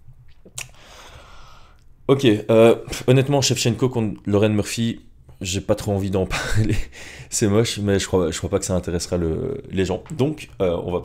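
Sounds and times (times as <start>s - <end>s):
soft breath hiss: 0.1s - 3.3s
mouth click: 0.2s - 0.8s.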